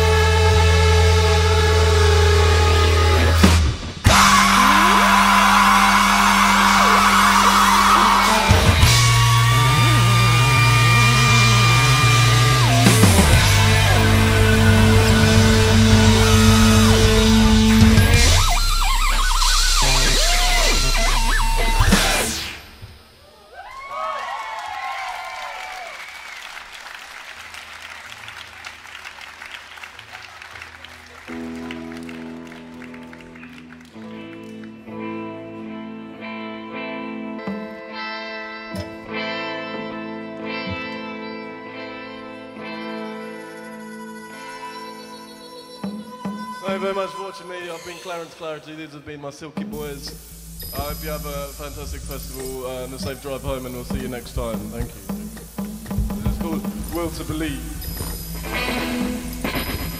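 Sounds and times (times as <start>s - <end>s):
band playing held chord: 0.0s - 22.9s, 49.7s - 59.9s
audience clapping and cheering: 2.8s - 18.8s, 23.4s - 35.3s
whoops: 4.1s - 13.2s, 23.2s - 26.7s
low droning note: 4.1s - 22.8s
loud hissing noise: 4.1s - 23.2s, 49.6s - 59.9s.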